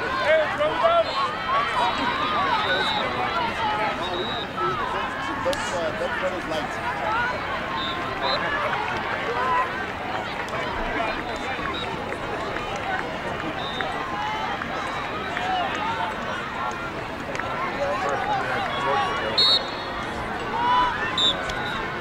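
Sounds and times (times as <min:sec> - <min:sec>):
many voices calling and talking: 0:00.0 - 0:22.0
sharp whistle blast: 0:19.4 - 0:19.9.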